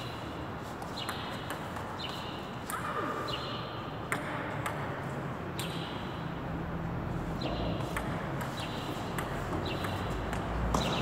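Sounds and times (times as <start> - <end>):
table tennis ball clicking: 7.9 - 11.0.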